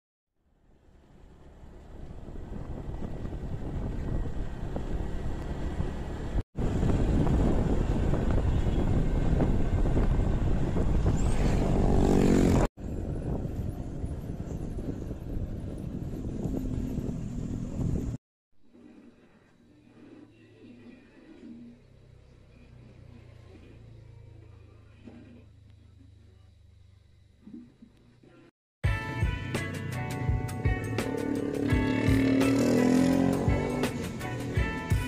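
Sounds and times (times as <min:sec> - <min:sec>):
wind and road noise: 0:00.6 - 0:18.2, 0:29.9 - 0:35.0
engine rising in pitch: 0:29.0 - 0:35.0.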